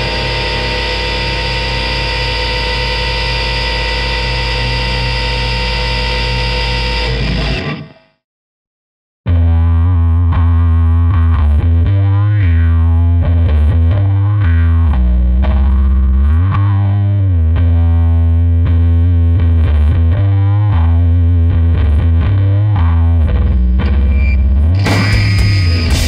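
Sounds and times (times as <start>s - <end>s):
distorted bass guitar: 0.0s - 8.2s, 9.2s - 26.0s
distorted electric guitar riff: 0.0s - 8.2s, 9.3s - 26.0s.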